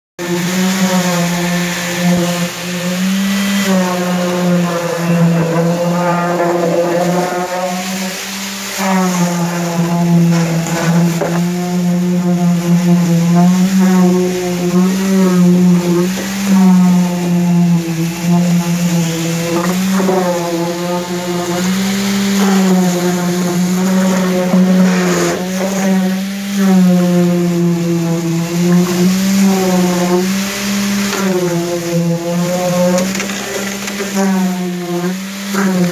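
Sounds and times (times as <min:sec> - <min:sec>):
concrete vibrator humming: 0:00.2 - 0:35.9.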